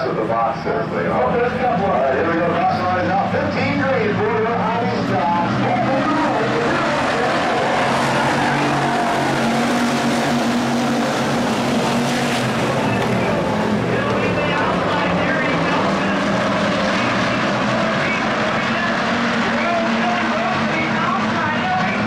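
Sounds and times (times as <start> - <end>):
race car engines droning: 0.0 - 22.0.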